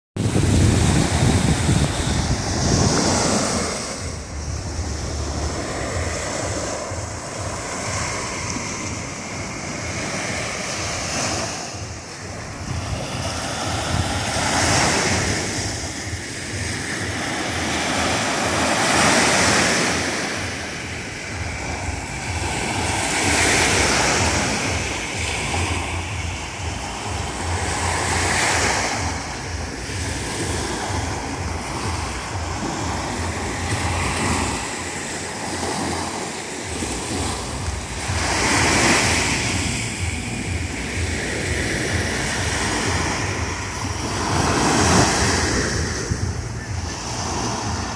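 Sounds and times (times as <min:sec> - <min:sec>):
small waves breaking on sand: 0:00.2 - 0:47.9.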